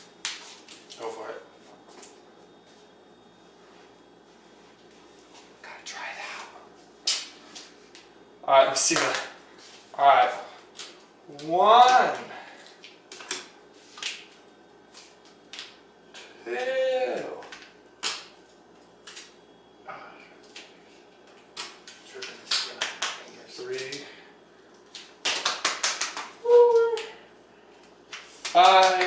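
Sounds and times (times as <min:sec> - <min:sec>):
person calling out: 0:16.4 - 0:17.4, 0:26.4 - 0:27.2.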